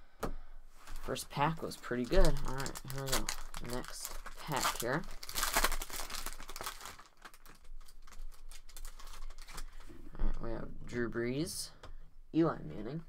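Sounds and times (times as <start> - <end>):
cards rustling and clicking: 0.8 - 9.9
foil wrapper tearing and crinkling: 0.9 - 9.9.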